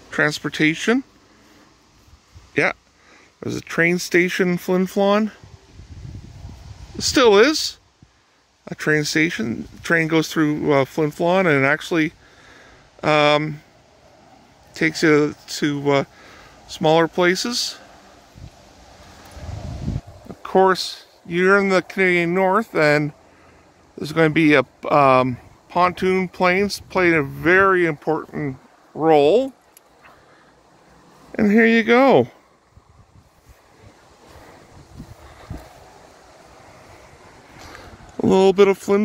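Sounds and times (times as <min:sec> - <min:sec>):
faint outdoor hiss: 0:00.0 - 0:39.0
wind buffeting microphone: 0:05.4 - 0:07.2, 0:18.3 - 0:20.5, 0:32.6 - 0:38.3.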